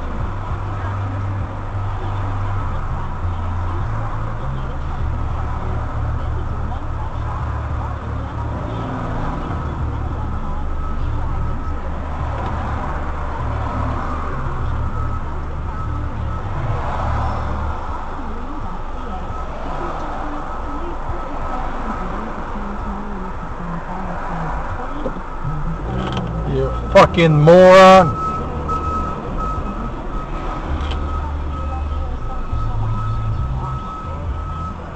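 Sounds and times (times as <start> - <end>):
car engine idling: 0.0 - 34.9.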